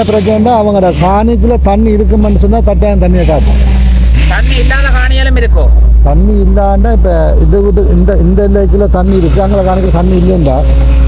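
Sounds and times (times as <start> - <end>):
steady low rumble: 0.0 - 11.0
person talking: 4.2 - 10.7.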